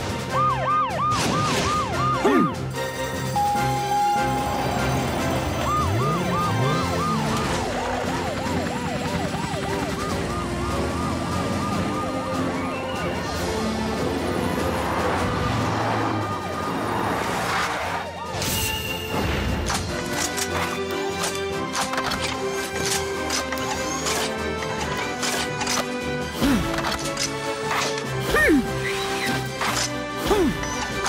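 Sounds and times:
police siren wailing: 0.0 - 19.0
action background music: 0.0 - 31.0.

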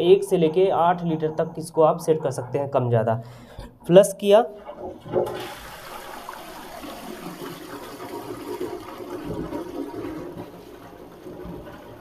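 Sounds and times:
flush water rushing into toilet pan: 4.6 - 12.0.

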